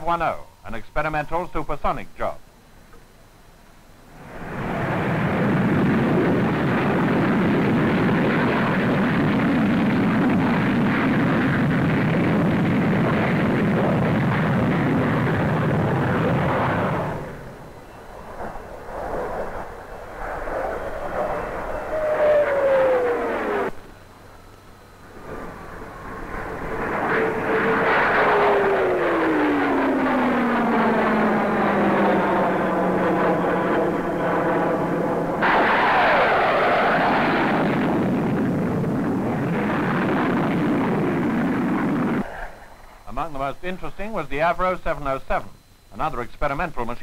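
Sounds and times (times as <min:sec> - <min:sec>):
falling jet whine: 0:03.2 - 0:47.0
jet aircraft flying past: 0:04.1 - 0:45.0.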